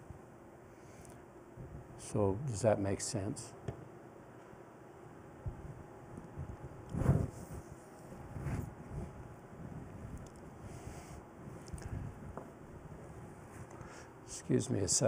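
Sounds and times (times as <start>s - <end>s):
clothing rustling on microphone: 6.9s - 13.9s.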